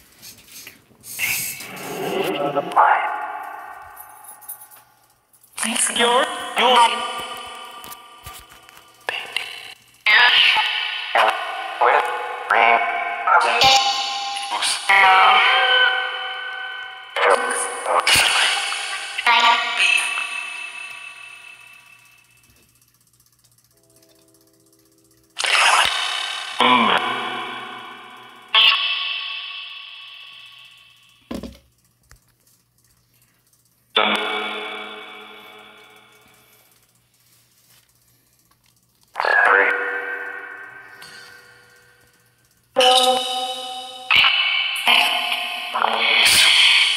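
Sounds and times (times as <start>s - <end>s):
pitched bursts with echo: 5.6s - 31.3s, 34.0s - 37.0s, 39.1s - 46.9s.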